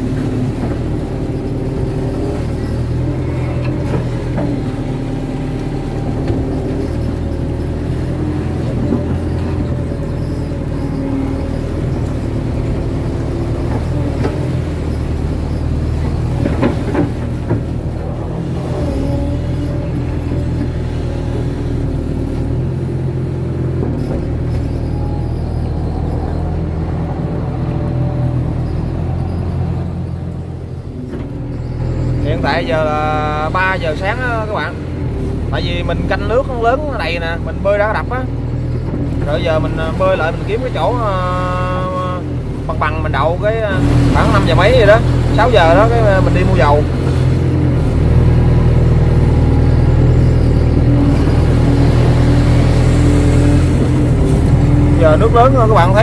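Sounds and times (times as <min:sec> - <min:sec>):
excavator diesel engine: 0:00.0 - 0:56.0.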